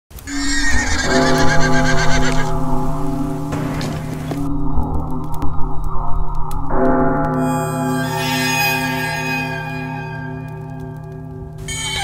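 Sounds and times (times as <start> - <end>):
horse whinnying: 0.3 - 2.5
sustained music chords: 1.0 - 11.9
low rumble: 1.1 - 7.8.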